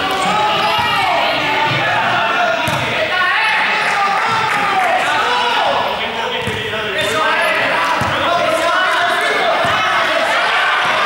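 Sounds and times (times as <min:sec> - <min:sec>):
people calling and chattering: 0:00.0 - 0:11.0
ball bouncing on court floor: 0:02.6 - 0:02.9, 0:06.4 - 0:06.7, 0:07.9 - 0:08.2, 0:09.6 - 0:09.9.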